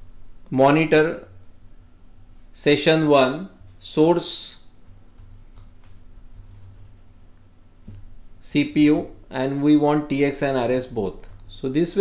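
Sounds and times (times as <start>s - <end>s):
computer keyboard typing: 4.8s - 7.2s.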